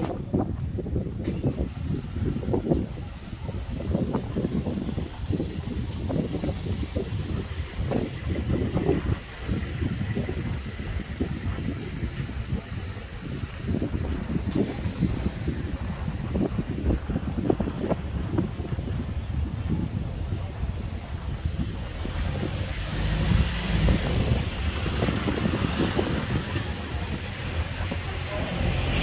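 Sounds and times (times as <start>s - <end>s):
street sound: 0.0s - 29.0s
wind buffeting microphone: 0.0s - 29.0s
car passing slowly: 20.2s - 29.0s.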